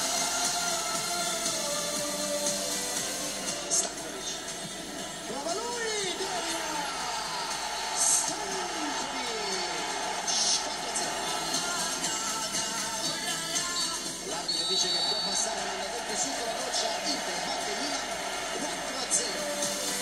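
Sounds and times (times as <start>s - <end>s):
indistinct voices: 0.0s - 20.0s
music from television speaker: 0.0s - 20.0s.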